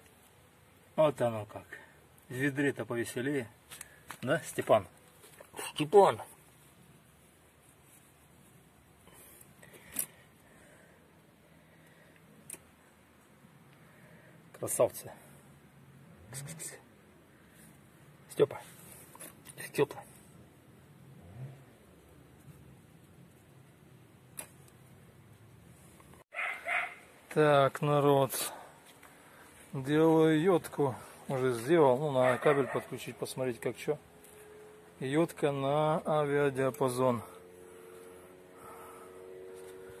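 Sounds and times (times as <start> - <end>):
dog barks: 26.3 - 27.1, 32.2 - 33.0.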